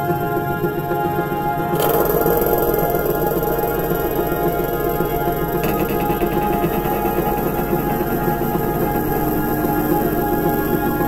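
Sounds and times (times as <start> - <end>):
ambient drone music: 0.0 - 11.0.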